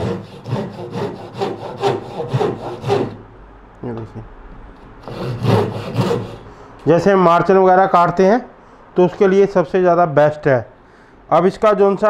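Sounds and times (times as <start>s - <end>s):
hand saw cutting wood: 0.0s - 3.2s, 5.0s - 6.5s.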